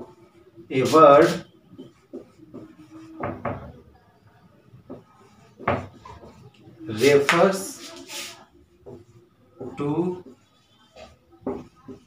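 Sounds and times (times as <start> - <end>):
marker writing on a whiteboard: 0.0 - 12.0.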